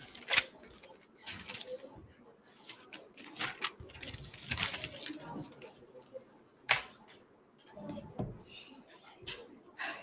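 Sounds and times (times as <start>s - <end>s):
paper sheets rustling: 0.0s - 5.8s
loud paper snap: 6.7s - 6.9s.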